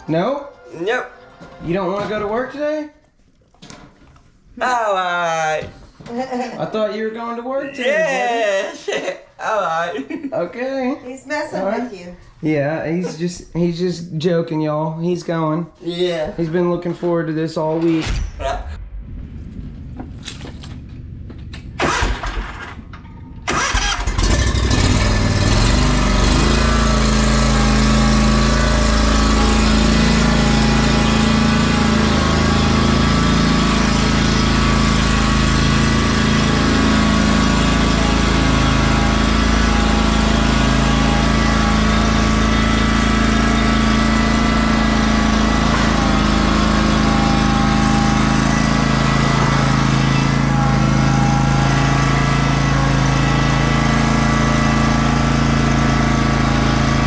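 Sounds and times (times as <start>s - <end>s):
mower engine cranking and running: 20.3s - 57.0s.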